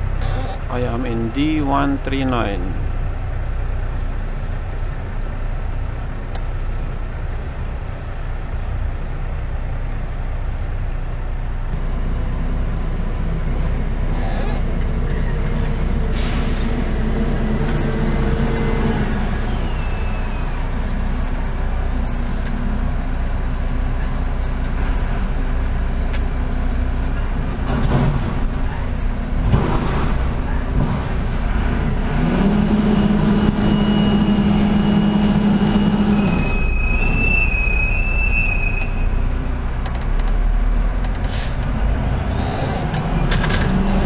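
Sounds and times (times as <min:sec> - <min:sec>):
truck engine idling: 0:00.0 - 0:42.2.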